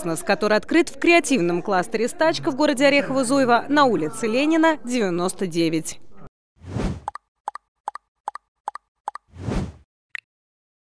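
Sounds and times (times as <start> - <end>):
whoosh: 6.6 - 7.1, 9.4 - 9.8.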